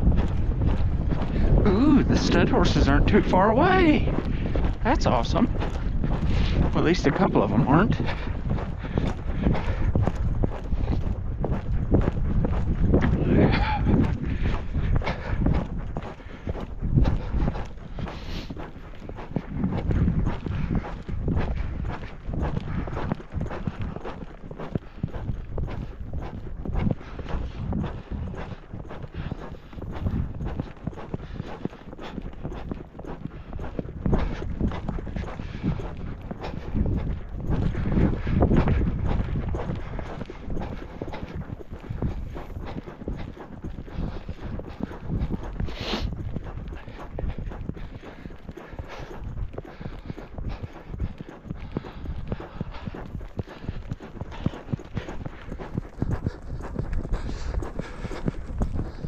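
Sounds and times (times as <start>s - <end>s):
horse hoofbeats on dirt: 0.0s - 59.0s.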